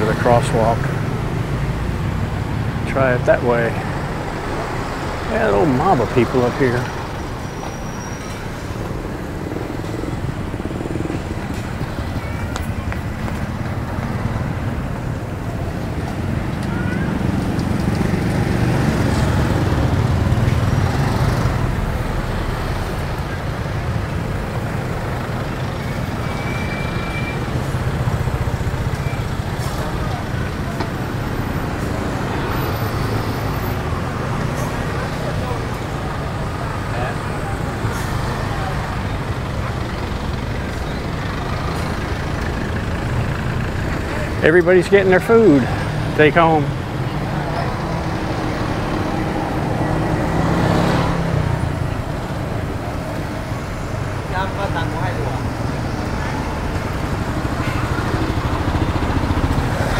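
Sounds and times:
low traffic rumble: 0.0s - 59.9s
motorbikes and cars passing: 0.0s - 59.9s
crowd chatter: 3.4s - 59.9s.

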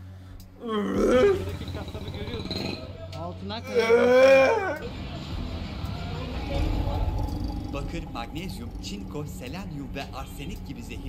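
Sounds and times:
indistinct voices: 0.6s - 11.0s
steady low hum: 4.9s - 11.0s.

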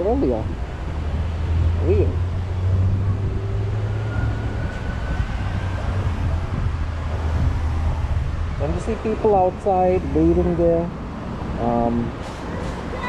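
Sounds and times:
low rumble of street traffic: 0.0s - 13.0s.

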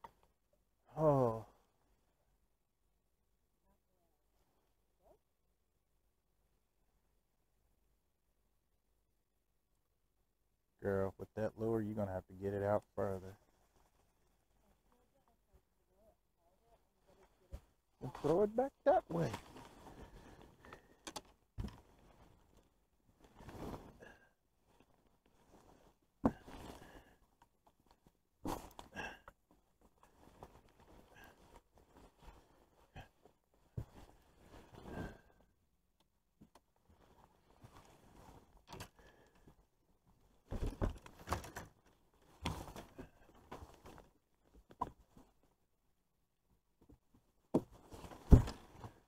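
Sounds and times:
rain jacket rustling: 19.1s - 21.0s, 21.7s - 35.4s, 36.9s - 39.3s.

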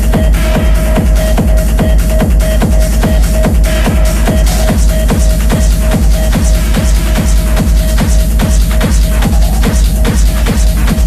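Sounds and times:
steady kick drum: 0.0s - 11.0s
techno music: 0.0s - 11.0s
ticking hi-hats: 0.0s - 11.0s.

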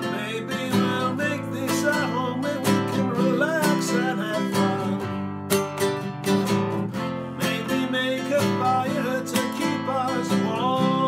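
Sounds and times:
classical guitar strumming: 0.0s - 11.0s.

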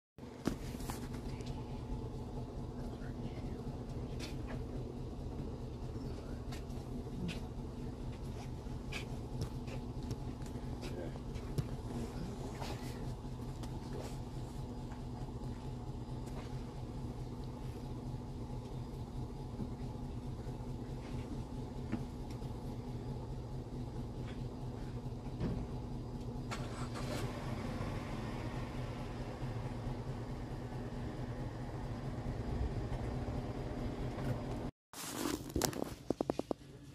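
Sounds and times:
low machine hum: 0.2s - 34.7s.

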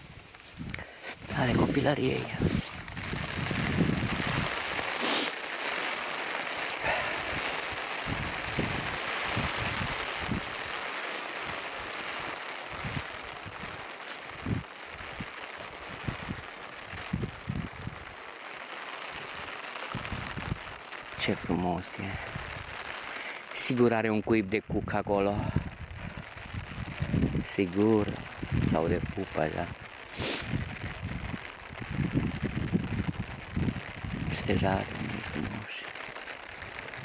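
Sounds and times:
footsteps through wet grass: 0.0s - 18.1s
rain hiss: 0.0s - 37.0s.

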